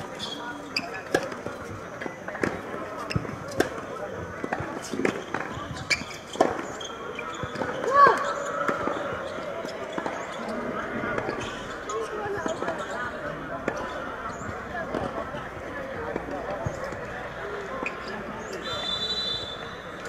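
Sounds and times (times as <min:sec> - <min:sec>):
low voices: 0:00.0 - 0:20.0.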